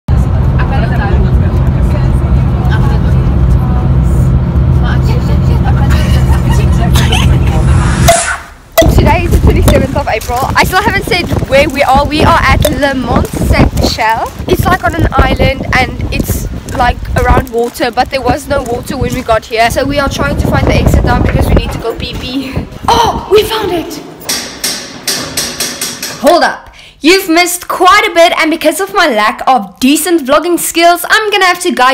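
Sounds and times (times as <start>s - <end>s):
bus engine and road noise: 0.1s - 22.9s
girls talking: 8.8s - 24.2s.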